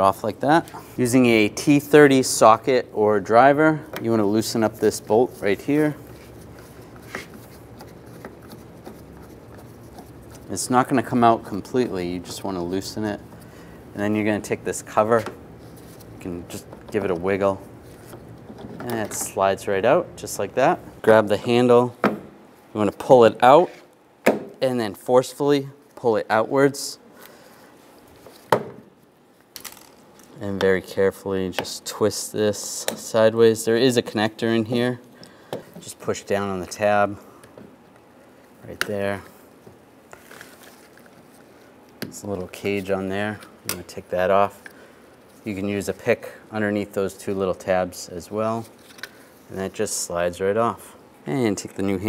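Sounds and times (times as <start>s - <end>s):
room hum: 0.0s - 52.0s.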